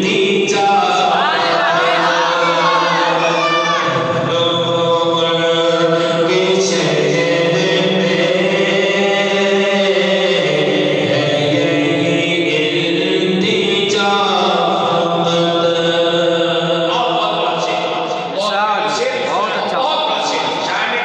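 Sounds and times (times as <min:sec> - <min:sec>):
man chanting into a microphone: 0:00.0 - 0:01.2, 0:03.8 - 0:12.2, 0:13.2 - 0:21.0.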